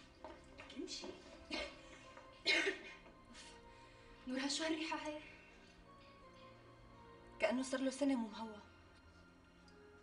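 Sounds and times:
soft background music: 0:00.0 - 0:10.0
woman coughing: 0:01.5 - 0:03.0.

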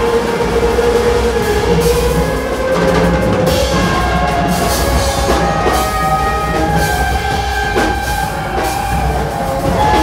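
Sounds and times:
trumpet holding long note: 0:00.0 - 0:10.0.

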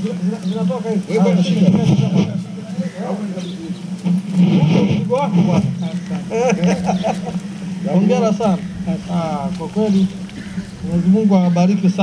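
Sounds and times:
people talking: 0:00.0 - 0:12.0
steady low hum: 0:00.0 - 0:12.0.

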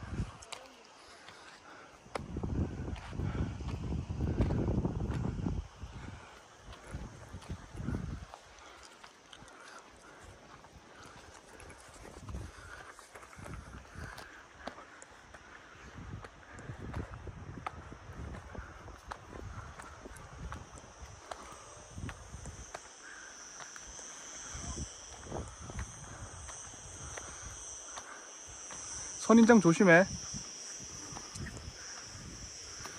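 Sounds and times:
footsteps on dirt path: 0:00.0 - 0:32.9
high-pitched insect buzz: 0:00.0 - 0:32.9.

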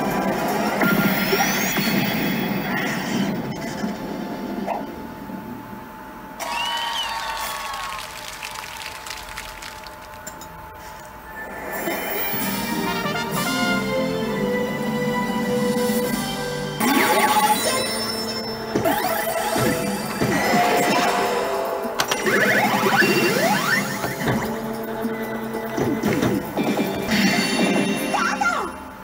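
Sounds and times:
slot machine music and effects: 0:11.7 - 0:29.0.

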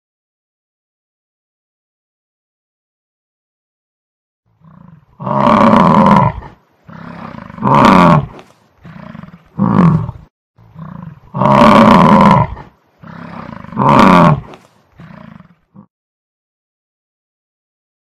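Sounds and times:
lion grunting calls: 0:04.6 - 0:15.9
lion roaring: 0:04.6 - 0:15.9.

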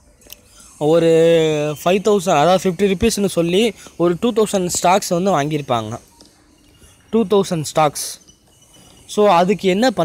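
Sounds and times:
person speaking: 0:07.1 - 0:08.3, 0:09.0 - 0:10.0.

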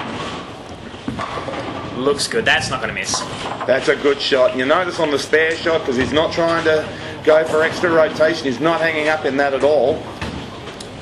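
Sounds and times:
bowling ball rolling on wooden lane: 0:00.0 - 0:08.4.

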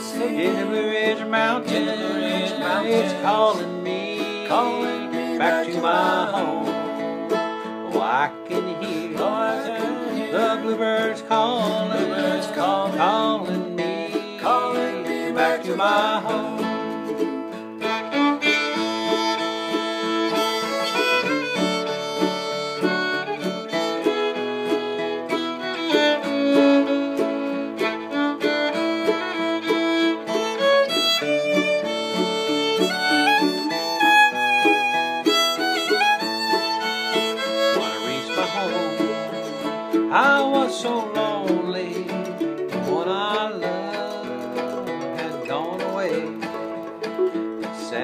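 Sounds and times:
fiddle with sliding notes: 0:00.0 - 0:48.0
strummed acoustic guitar: 0:00.0 - 0:48.0.

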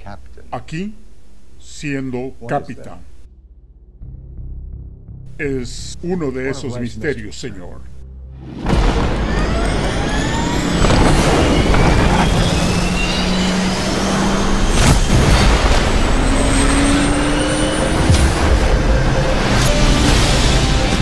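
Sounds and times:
turbine whines rising in pitch: 0:08.6 - 0:21.0
jet engine roar: 0:08.7 - 0:21.0.

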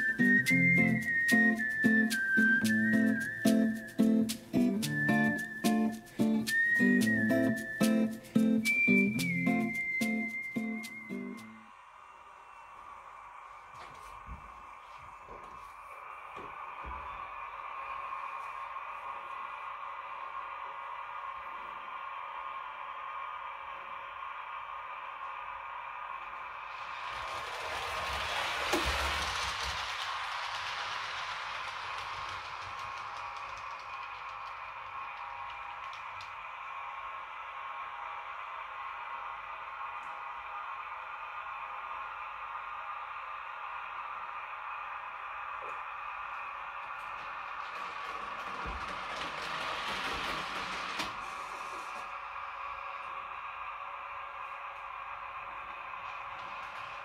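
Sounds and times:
model wagons rolling on tracks: 0:00.0 - 0:11.5, 0:26.4 - 0:38.4, 0:45.3 - 0:57.0.

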